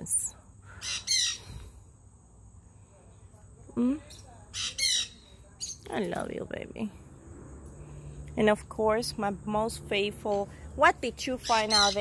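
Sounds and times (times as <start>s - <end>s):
parrot squawk: 0.8s - 1.4s.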